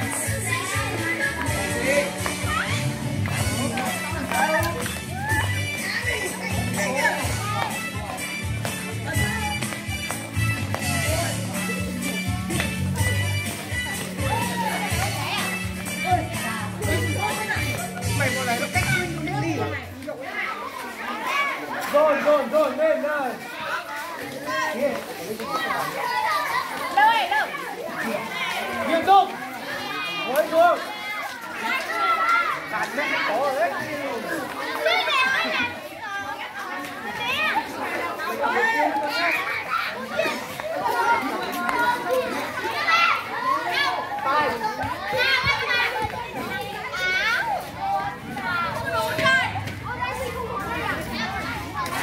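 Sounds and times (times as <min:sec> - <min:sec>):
children talking and calling out: 0:00.0 - 0:52.0.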